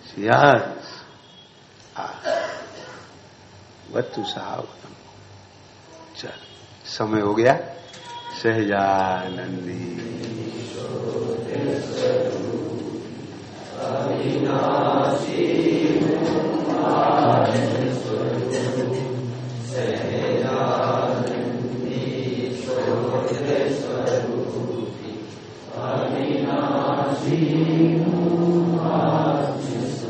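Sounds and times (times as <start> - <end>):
group chanting: 9.2 - 30.0.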